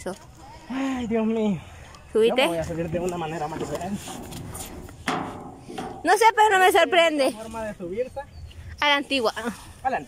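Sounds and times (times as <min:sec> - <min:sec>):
shoe scraping metal: 0:03.5 - 0:06.2.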